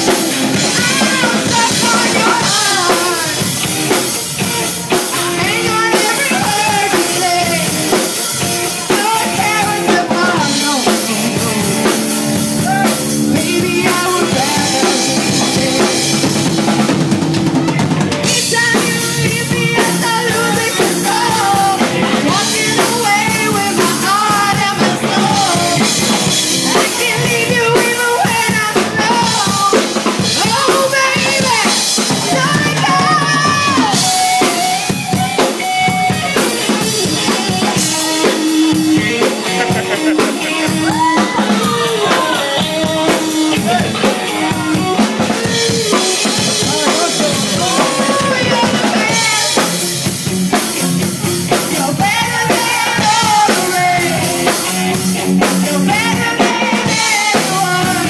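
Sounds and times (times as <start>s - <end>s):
drum kit beat: 0.0s - 58.0s
electric guitar melody: 0.0s - 58.0s
live rock band playing: 0.0s - 58.0s.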